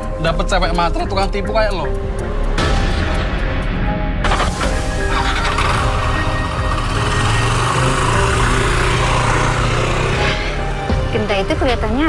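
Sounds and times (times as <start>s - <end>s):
motor scooter engine humming: 4.8s - 12.0s.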